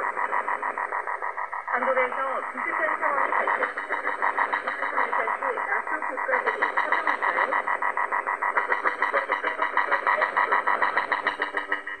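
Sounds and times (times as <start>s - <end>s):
radio jamming pulsing buzz: 0.0s - 12.0s.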